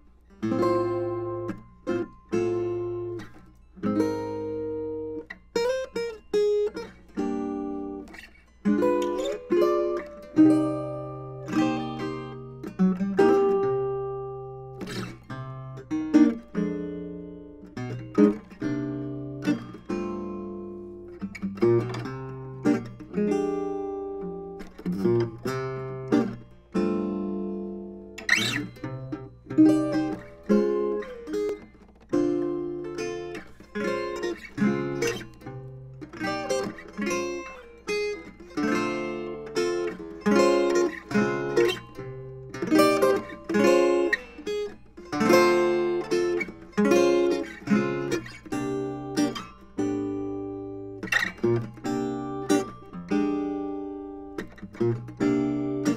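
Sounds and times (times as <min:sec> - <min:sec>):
acoustic guitar playing: 0:00.0 - 0:55.9.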